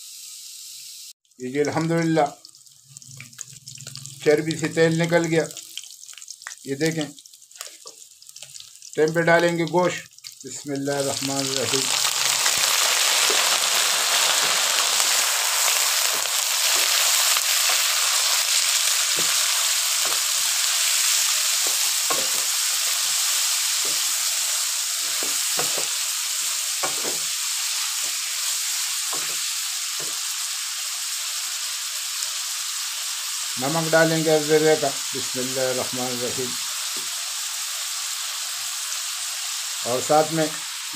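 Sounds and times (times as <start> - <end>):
meat sizzling in hot fat: 0.0 - 40.9.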